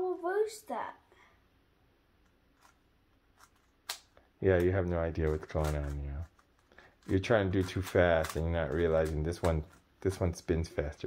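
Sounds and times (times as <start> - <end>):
puzzle cube layers clicking: 3.4 - 9.8.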